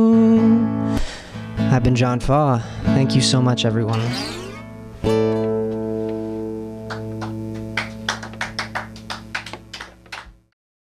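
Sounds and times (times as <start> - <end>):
guitar chord ringing: 3.7 - 8.0
people clapping: 6.8 - 10.5.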